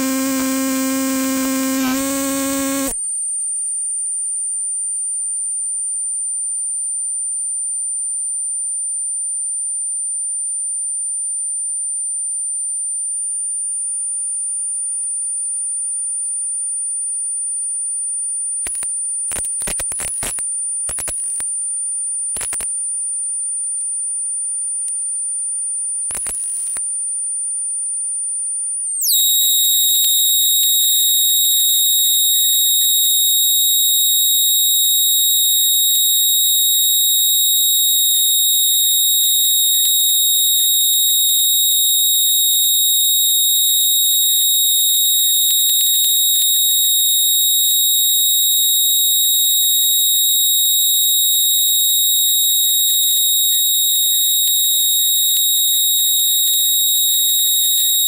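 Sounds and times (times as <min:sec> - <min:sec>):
high tone sliding down: 0:00.0 - 0:03.0
high sine tones: 0:00.0 - 0:05.4, 0:28.9 - 0:58.0.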